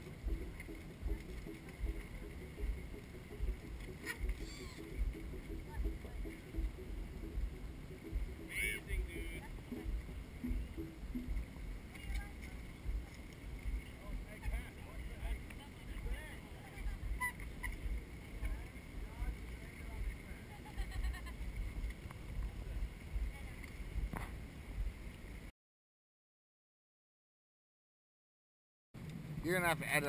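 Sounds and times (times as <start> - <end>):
wind buffeting microphone: 0.0 - 25.5.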